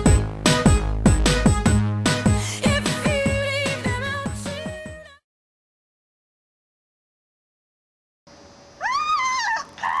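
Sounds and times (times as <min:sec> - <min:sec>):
dog whining: 0:08.8 - 0:10.0.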